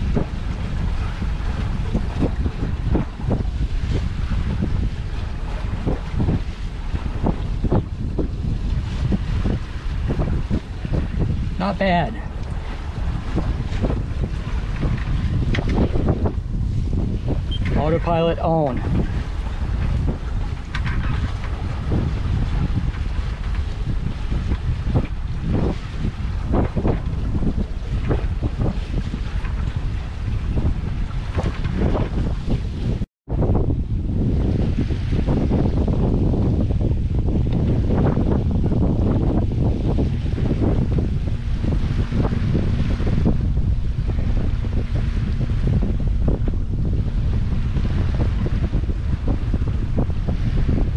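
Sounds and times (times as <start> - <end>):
water washing along hull: 0.0 - 50.9
wind buffeting microphone: 0.0 - 50.9.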